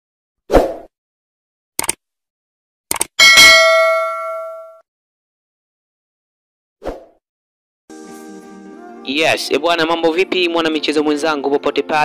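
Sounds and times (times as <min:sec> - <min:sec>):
sharp clicks: 0:01.8 - 0:02.0, 0:02.9 - 0:03.1
bell ding: 0:03.2 - 0:04.8.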